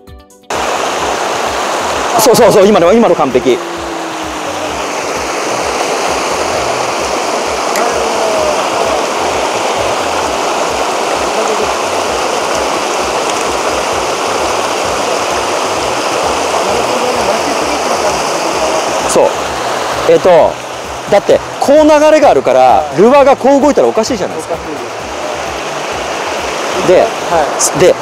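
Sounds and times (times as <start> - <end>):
stream running over rocks: 0.5 - 28.0.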